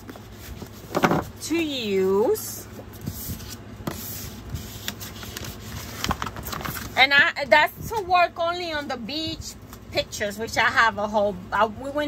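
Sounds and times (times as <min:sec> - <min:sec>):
paper and plastic rustling: 0:00.0 - 0:01.4, 0:02.5 - 0:08.1.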